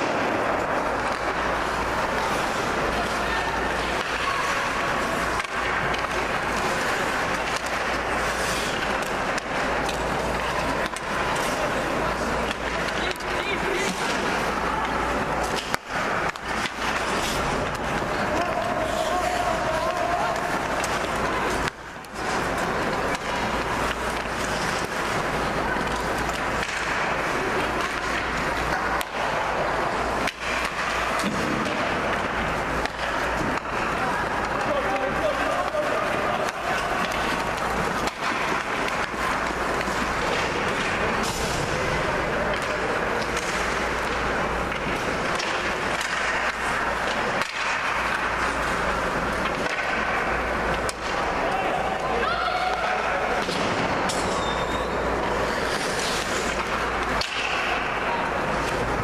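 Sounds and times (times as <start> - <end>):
skates scraping on ice: 0.0 - 59.0
spectator chatter: 0.0 - 59.0.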